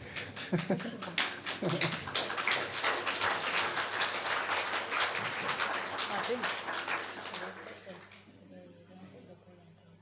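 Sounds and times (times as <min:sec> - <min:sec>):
audience clapping: 0:00.0 - 0:08.3.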